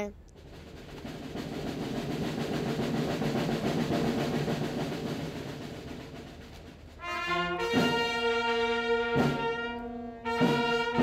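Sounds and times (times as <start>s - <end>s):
drum roll: 0.0s - 11.0s.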